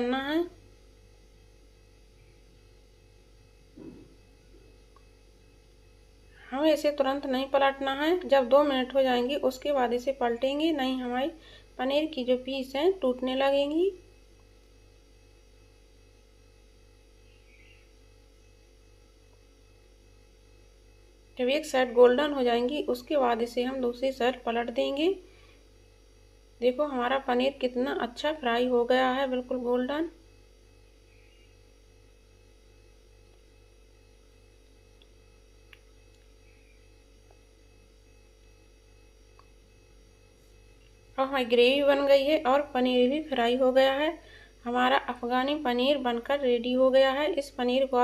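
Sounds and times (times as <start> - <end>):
faint low hum: 0.0 - 48.0.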